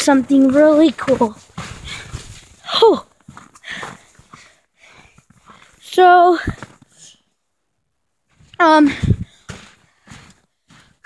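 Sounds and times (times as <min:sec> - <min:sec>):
boy wordless vocal sound: 0:00.0 - 0:02.0, 0:02.6 - 0:03.1, 0:05.8 - 0:06.6, 0:08.5 - 0:09.2
footsteps crunching on snow: 0:00.0 - 0:04.6, 0:08.3 - 0:11.0.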